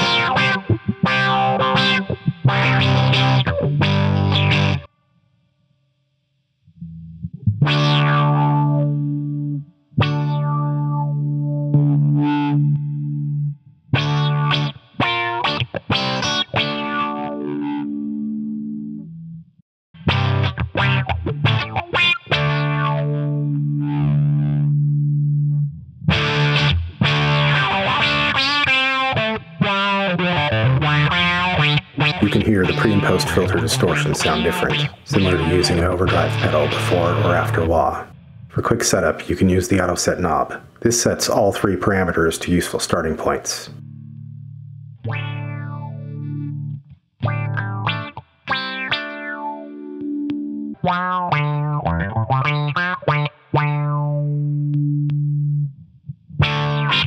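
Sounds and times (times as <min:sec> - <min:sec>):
distorted electric guitar chords: 0:00.0 - 0:04.9, 0:06.7 - 0:19.4, 0:20.0 - 0:38.7, 0:43.3 - 0:57.0
guitar filter sweeping: 0:00.0 - 0:04.9, 0:06.7 - 0:19.1, 0:20.0 - 0:39.2, 0:43.2 - 0:57.0.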